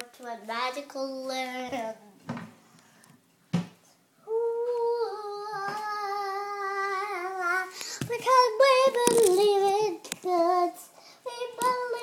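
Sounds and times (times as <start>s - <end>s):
child singing wordless tune: 0.0s - 2.2s, 4.2s - 12.0s.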